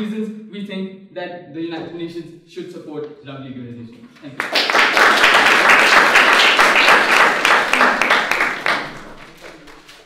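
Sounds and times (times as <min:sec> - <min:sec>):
audience applauding: 0:04.2 - 0:10.0.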